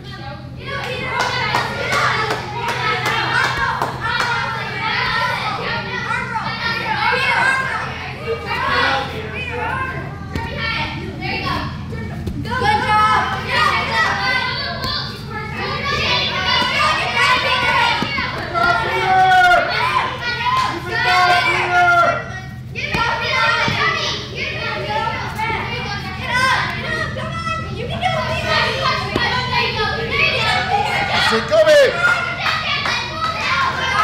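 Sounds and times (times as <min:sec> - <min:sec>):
children shouting: 0:00.0 - 0:34.0
steady low hum: 0:00.0 - 0:34.0.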